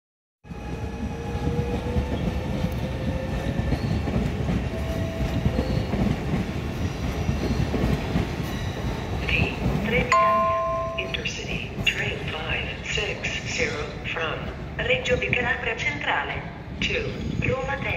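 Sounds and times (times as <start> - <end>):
train wheels rumbling on rails: 0.5 - 15.8.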